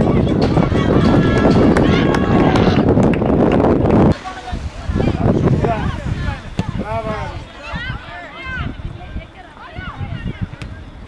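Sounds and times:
wind noise on microphone: 0.0 - 11.0
people shouting: 0.1 - 3.0, 5.8 - 8.8.

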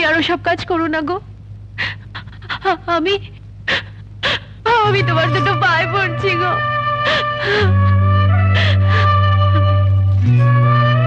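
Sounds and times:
low steady hum: 0.0 - 11.0
person breathing heavily: 3.7 - 4.6, 7.0 - 9.3.

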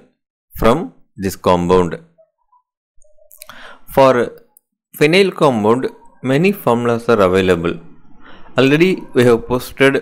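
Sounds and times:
man speaking: 3.8 - 10.0.

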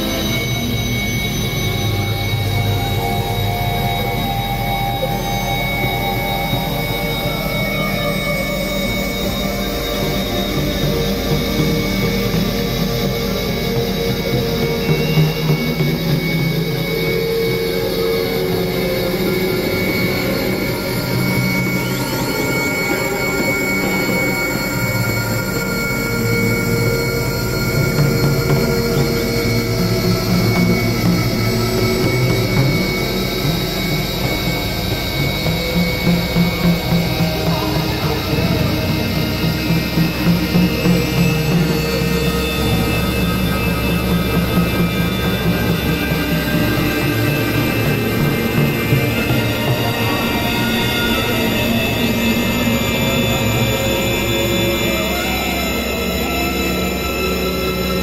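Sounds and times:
electronic drone music: 0.0 - 58.0.

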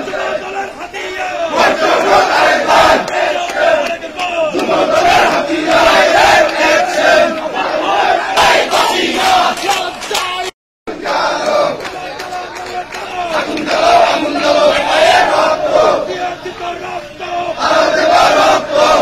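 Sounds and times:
crowd shouting slogans: 0.0 - 19.0.

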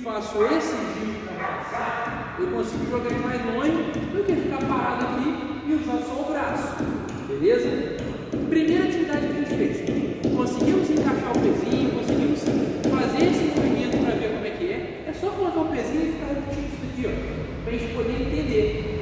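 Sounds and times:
man talking: 0.0 - 19.0.

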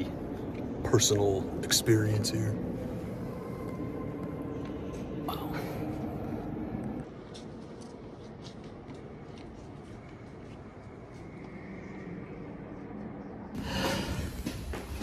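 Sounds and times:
reverberant church hum: 0.0 - 15.0
faint footsteps on walkway: 3.5 - 15.0.

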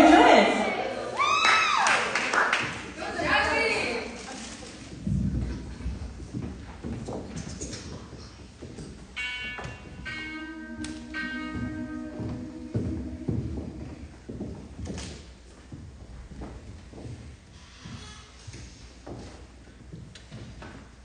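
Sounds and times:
footsteps on wooden stage: 4.7 - 21.0
voices humming held notes: 9.2 - 14.4.

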